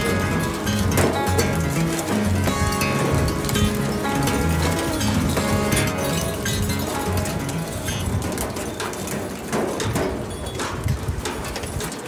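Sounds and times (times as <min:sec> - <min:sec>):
boat engine rumble: 0:00.0 - 0:12.0
knocks and thumps on reel: 0:00.0 - 0:12.0.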